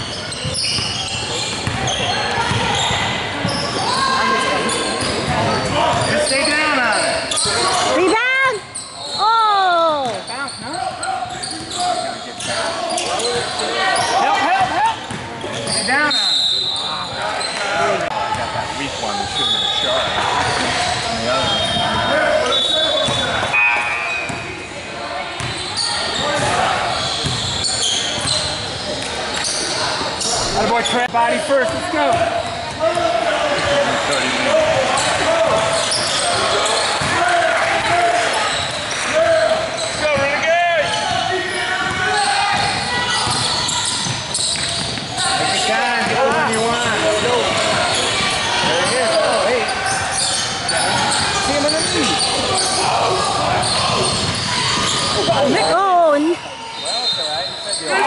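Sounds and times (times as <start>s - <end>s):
basketball bouncing on court: 0.0s - 3.8s, 14.6s - 15.7s, 25.4s - 25.6s, 26.4s - 29.1s, 39.5s - 45.2s, 50.0s - 55.9s
voices in echoing gym: 0.0s - 58.0s.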